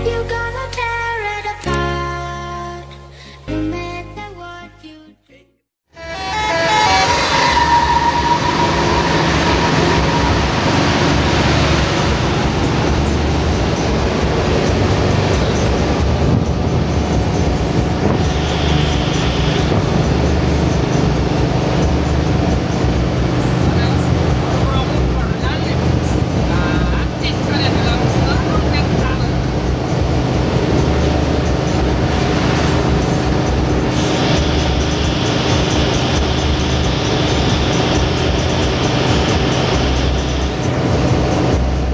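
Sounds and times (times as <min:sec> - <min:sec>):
bus engine and road noise: 0:00.0 - 0:02.3, 0:05.9 - 0:41.9
music: 0:00.0 - 0:08.4, 0:09.0 - 0:41.9
voices: 0:23.4 - 0:29.5.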